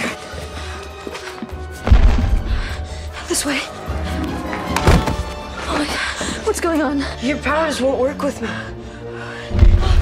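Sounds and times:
tense music score: 0:00.0 - 0:10.0.

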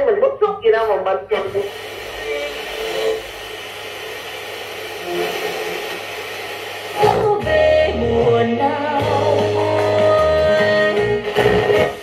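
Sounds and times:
faint broadcast sound: 0:00.0 - 0:09.0
radio static hiss: 0:00.8 - 0:09.6, 0:11.0 - 0:12.0.

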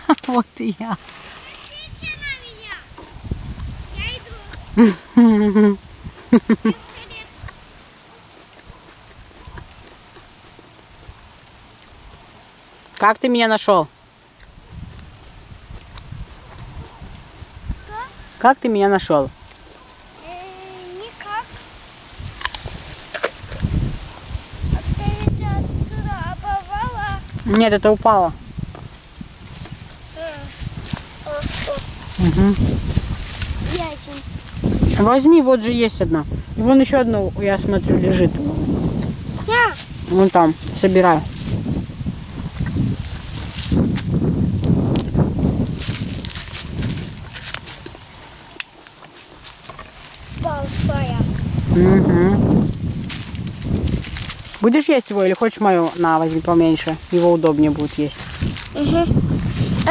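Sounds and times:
footsteps rustling through long grass: 0:00.3 - 0:04.8, 0:19.3 - 0:35.5, 0:38.6 - 0:59.9
child's voice: 0:01.5 - 0:02.9, 0:03.9 - 0:04.6, 0:06.7 - 0:07.4, 0:17.8 - 0:18.2, 0:20.2 - 0:21.6, 0:24.7 - 0:27.4, 0:30.1 - 0:32.0, 0:33.6 - 0:34.4, 0:39.4 - 0:39.9, 0:50.4 - 0:51.3, 0:58.7 - 0:59.2
grasshoppers chirping: 0:10.0 - 0:59.9
person speaking: 0:30.2 - 0:32.7, 0:50.4 - 0:52.5, 0:54.6 - 0:59.2.

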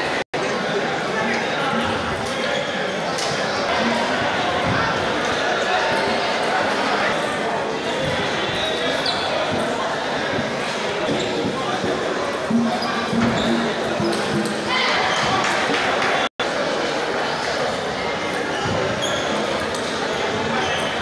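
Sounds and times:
crowd chatter in large hall: 0:00.0 - 0:21.0.

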